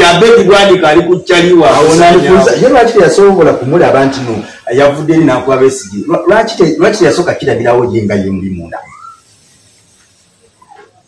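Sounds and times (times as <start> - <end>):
man's voice: 0.0 - 8.8
background hiss: 0.0 - 11.0.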